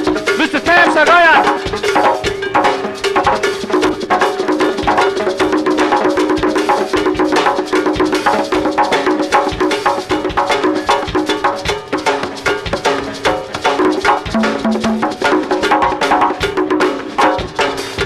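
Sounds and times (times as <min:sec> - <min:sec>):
congas played by hand: 0:00.0 - 0:18.0.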